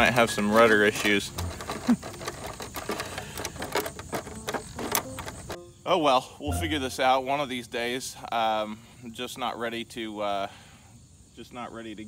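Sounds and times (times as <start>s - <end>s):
plastic parts clicking and rattling: 0.0s - 5.6s.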